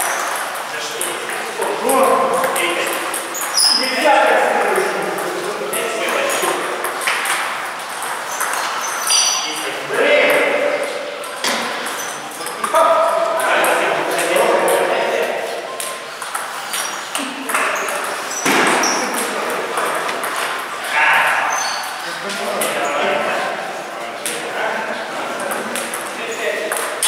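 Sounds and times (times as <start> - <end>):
table tennis ball clicking off paddles: 6.1 - 8.8, 15.8 - 20.9, 25.3 - 27.0
ball bouncing on table: 6.3 - 8.7, 11.2 - 12.8, 15.8 - 20.7, 26.7 - 27.0.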